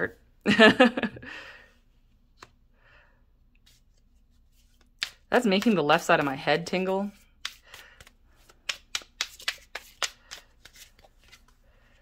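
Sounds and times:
cards shuffled by hand: 0:03.6 - 0:12.0.

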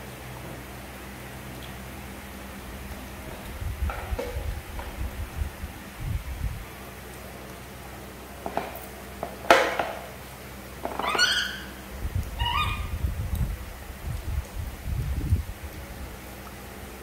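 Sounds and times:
low muffled rumbling: 0:02.6 - 0:06.9, 0:11.8 - 0:16.2
squeaky animal calls: 0:10.8 - 0:13.0.

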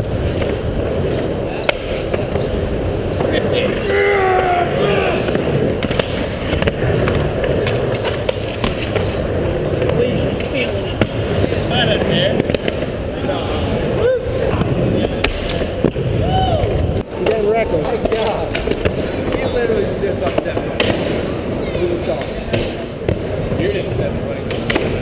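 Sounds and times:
onlookers chattering and shouting: 0:00.0 - 0:25.0
skateboard rolling on concrete: 0:00.0 - 0:25.0
skateboard knocks and clacks: 0:05.2 - 0:13.0.

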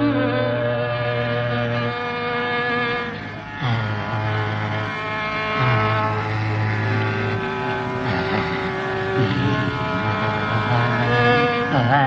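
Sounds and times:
classical vocal or instrumental melody: 0:00.0 - 0:12.0
steady drone: 0:00.0 - 0:12.0.

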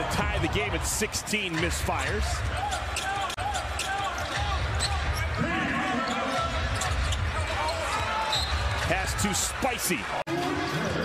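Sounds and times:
murmur of arena crowd: 0:00.0 - 0:11.0
sneaker squeaks: 0:03.8 - 0:05.4, 0:06.0 - 0:08.9.

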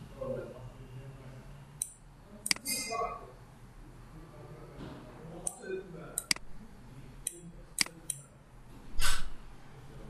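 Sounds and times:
computer mouse clicking: 0:06.2 - 0:06.4.

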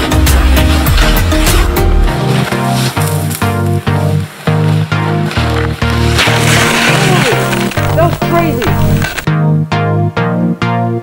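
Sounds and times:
music with clipped notes: 0:00.0 - 0:11.0.

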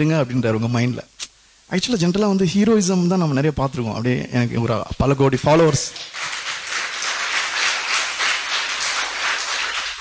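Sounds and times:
audience applauding: 0:05.8 - 0:10.0.

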